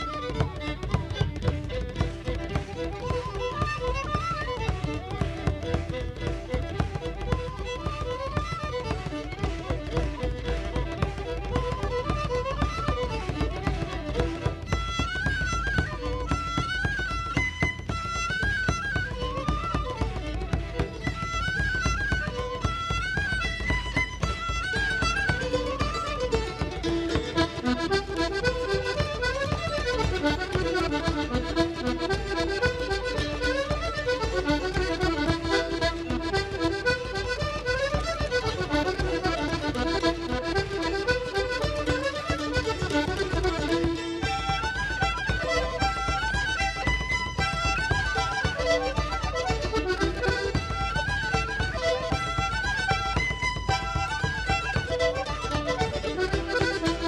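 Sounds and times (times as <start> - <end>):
fiddle: 0.0 - 57.0
strummed string accompaniment: 0.0 - 57.0.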